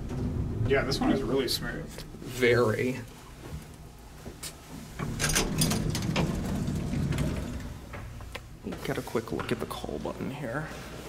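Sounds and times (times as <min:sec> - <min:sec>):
elevator doors sliding open: 0:00.0 - 0:02.2, 0:04.8 - 0:08.6.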